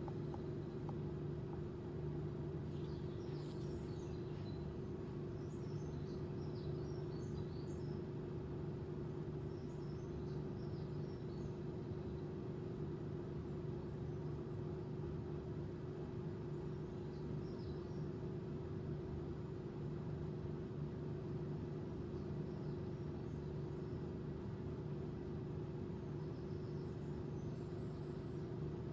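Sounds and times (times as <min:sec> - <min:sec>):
low indoor hum: 0:00.0 - 0:28.9.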